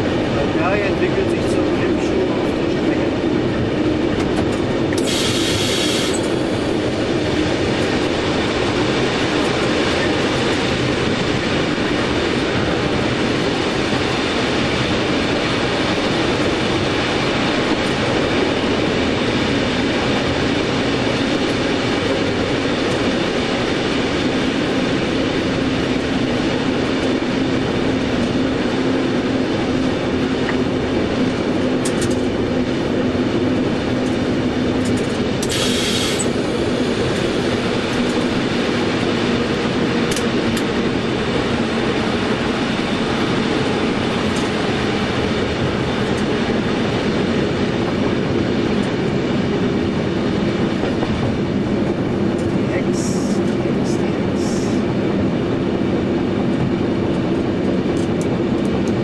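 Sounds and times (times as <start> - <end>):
diesel locomotive engine drone: 0.0 - 59.0
train wheels on track: 0.0 - 59.0.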